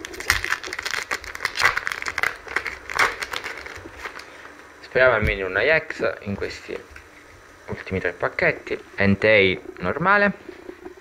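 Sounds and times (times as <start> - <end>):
foil wrapper crinkling: 0.0 - 4.6.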